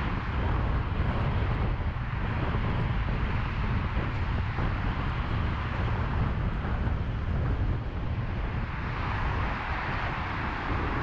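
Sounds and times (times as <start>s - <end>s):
car road noise in traffic: 0.0s - 11.0s.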